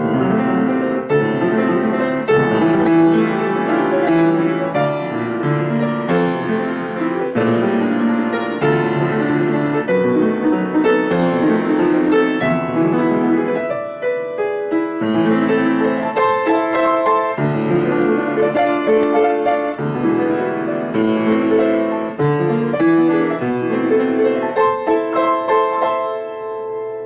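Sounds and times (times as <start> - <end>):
grand piano playing fast chords: 0.0 - 27.0.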